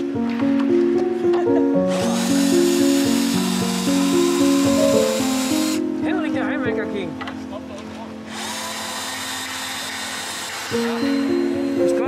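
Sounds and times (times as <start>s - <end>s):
background music: 0.0s - 12.0s
cordless drill whirring: 1.9s - 5.8s, 8.3s - 11.0s.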